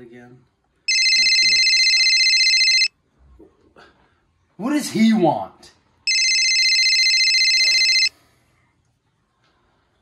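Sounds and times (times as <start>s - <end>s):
telephone ringing: 0.9s - 2.9s, 6.1s - 8.1s.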